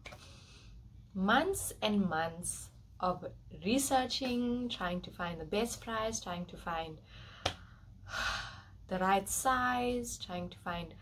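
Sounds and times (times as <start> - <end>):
woman speaking: 1.2 - 7.0, 8.9 - 11.0
woman breathing in: 7.0 - 8.8.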